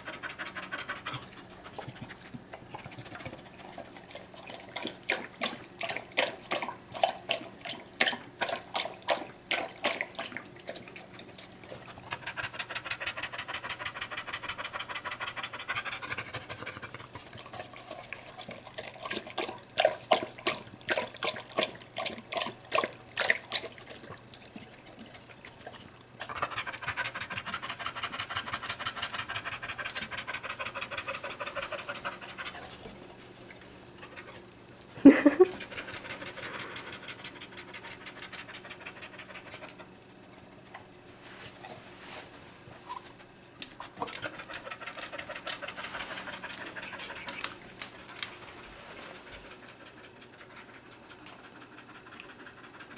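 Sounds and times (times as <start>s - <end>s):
dog panting: 0.0s - 7.8s, 9.6s - 20.3s, 20.9s - 40.9s, 43.0s - 52.9s
dog lapping water: 0.0s - 34.4s.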